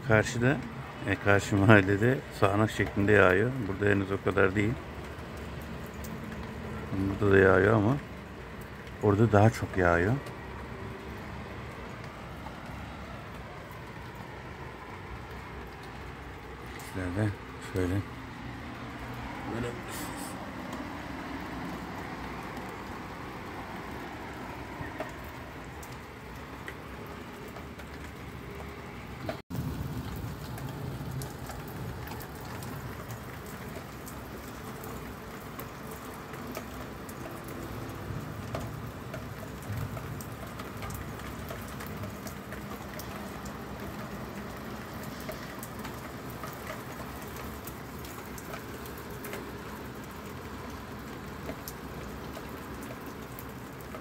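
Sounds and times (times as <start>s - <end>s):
rain falling steadily: 0.0s - 54.0s.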